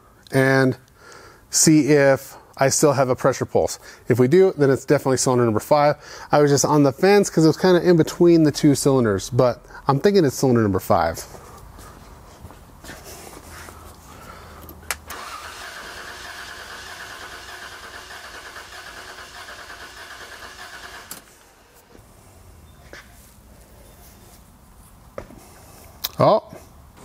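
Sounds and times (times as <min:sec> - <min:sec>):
engine cranking by starter: 0:14.7 - 0:22.0.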